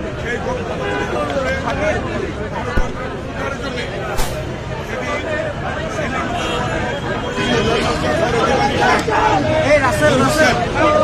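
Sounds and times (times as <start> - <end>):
crowd chatter: 0.0 - 11.0
people talking: 0.1 - 11.0.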